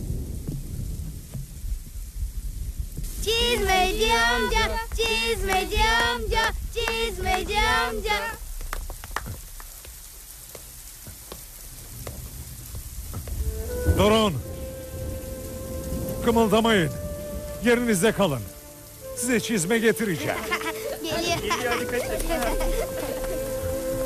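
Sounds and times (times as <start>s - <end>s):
rain falling on pavement: 0.0s - 24.0s
water dripping: 0.0s - 24.0s
boys shouting high-pitched calls: 3.3s - 8.4s
held musical note: 13.4s - 24.0s.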